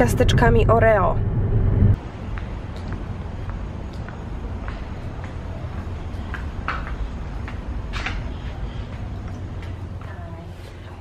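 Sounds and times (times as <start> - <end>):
low rumble: 0.0 - 4.6
footsteps on concrete: 2.2 - 10.8.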